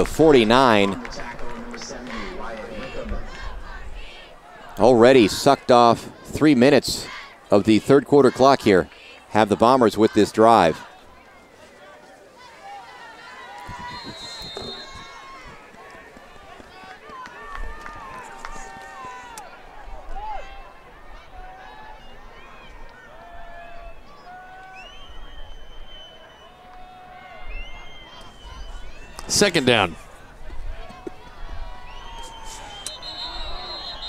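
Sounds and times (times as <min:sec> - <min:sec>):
crowd shouts and calls: 0:00.0 - 0:34.0
short high whistle: 0:13.7 - 0:15.1, 0:31.9 - 0:34.0.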